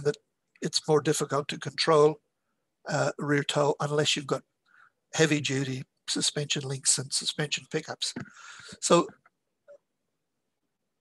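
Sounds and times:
man speaking: 0.0s - 2.2s, 2.9s - 4.4s, 5.1s - 9.2s.

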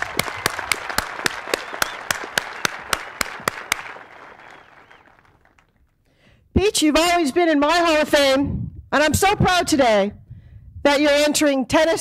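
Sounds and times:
audience applauding: 0.0s - 6.0s
sharp individual claps: 0.0s - 6.0s.

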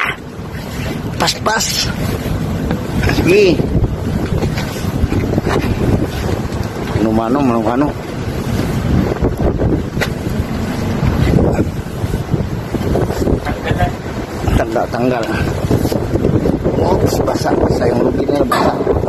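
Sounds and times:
steady low rumble: 0.0s - 19.0s
wind buffeting microphone: 0.0s - 19.0s.

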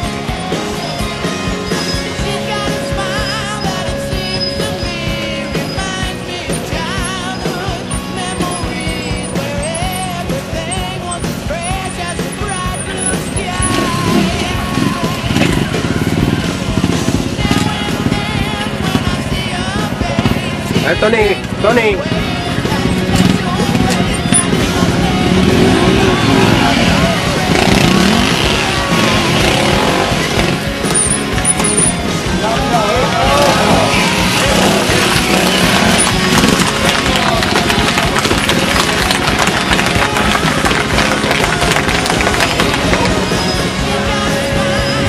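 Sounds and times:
motorcycle engine running: 0.0s - 45.0s
spectators shouting: 20.8s - 45.0s.

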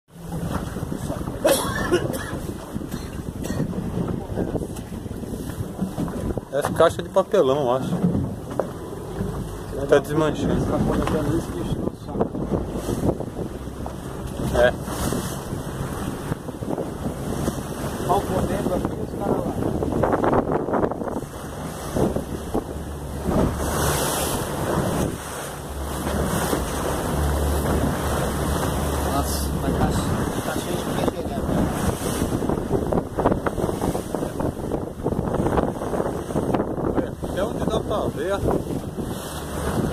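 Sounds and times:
sea wash: 0.1s - 39.9s
wind noise on microphone: 0.2s - 39.9s
low engine rumble: 2.4s - 39.9s.

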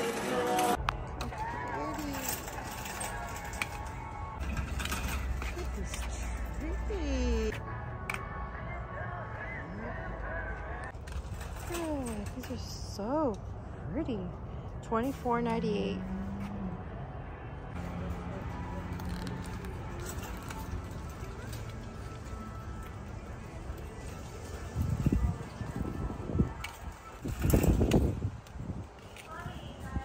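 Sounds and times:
background music: 0.0s - 28.0s.

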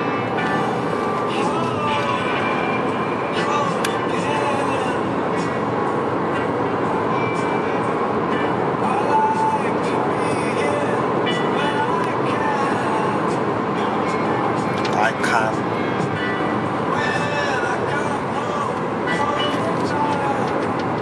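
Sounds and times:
road and engine noise in car: 0.0s - 21.0s.

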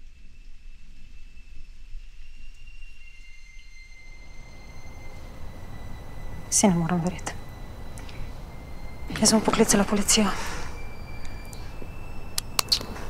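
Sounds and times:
faint high-pitched whines: 0.0s - 13.0s
low steady rumble: 4.3s - 13.0s.

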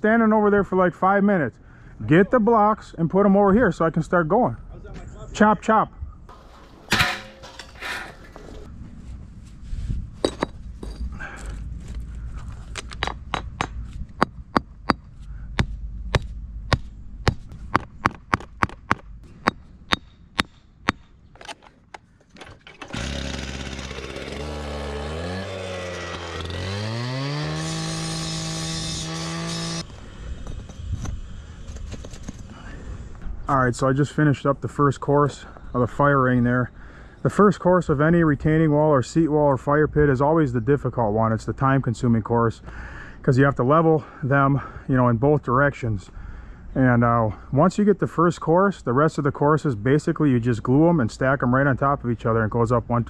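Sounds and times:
hammer tapping concrete blocks: 12.8s - 21.0s
small gasoline engine revving: 22.9s - 29.9s.

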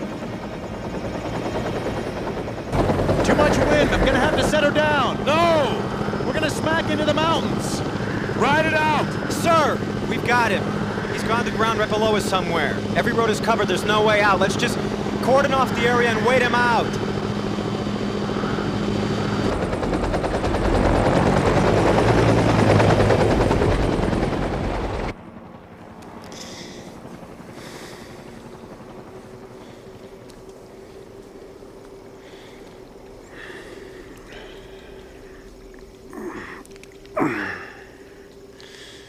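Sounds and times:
helicopter rotor and turbine: 0.0s - 39.0s
faint steady hum: 25.7s - 39.0s.

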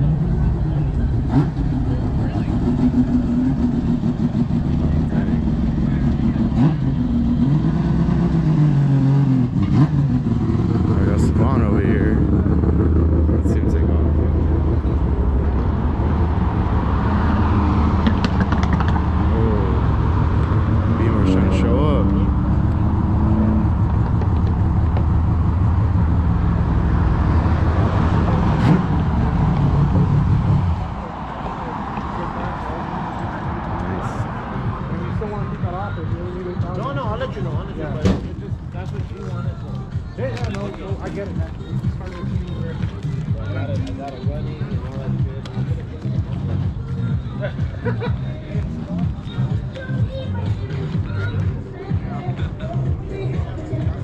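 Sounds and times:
people talking: 0.0s - 7.0s, 10.8s - 12.3s, 13.4s - 14.9s, 19.2s - 19.9s, 20.9s - 22.4s, 31.4s - 54.0s
car engine idling: 0.0s - 46.1s.

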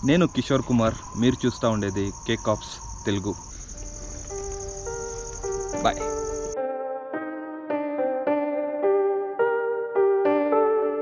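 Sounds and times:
crickets trilling: 0.0s - 6.6s
soft electric piano music: 3.8s - 11.0s.

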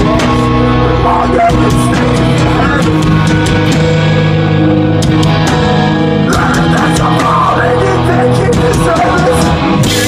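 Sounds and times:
electric guitars and bass chords: 0.0s - 10.0s
drums with cymbal hits: 1.4s - 10.0s.

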